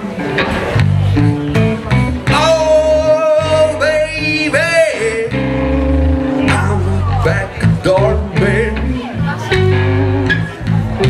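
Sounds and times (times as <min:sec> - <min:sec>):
electric bass notes: 0:00.0 - 0:11.0
electric guitar: 0:00.0 - 0:11.0.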